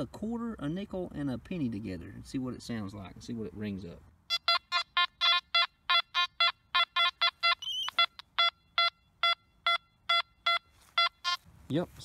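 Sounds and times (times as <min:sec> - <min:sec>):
metal detector beeping: 0:04.3 - 0:11.4
metal detector warbling tone: 0:04.3 - 0:11.4.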